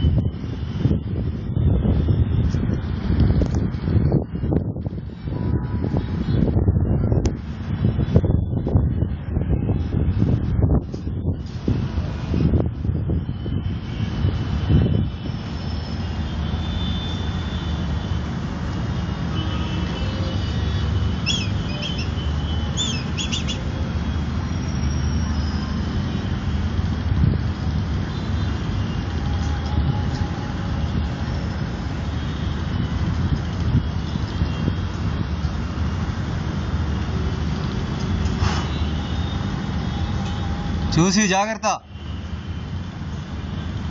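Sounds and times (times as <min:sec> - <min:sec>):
high gliding bird calls: 0:21.2 - 0:23.7.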